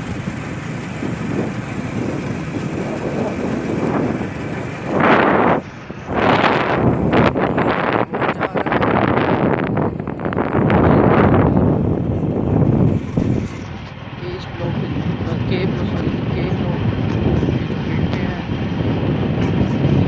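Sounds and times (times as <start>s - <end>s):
car rumble in motion: 0.0s - 20.0s
wind buffeting microphone: 0.0s - 20.0s.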